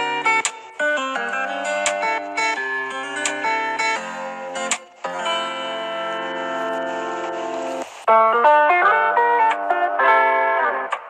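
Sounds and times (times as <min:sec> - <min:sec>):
instrumental background music: 0:00.0 - 0:11.0.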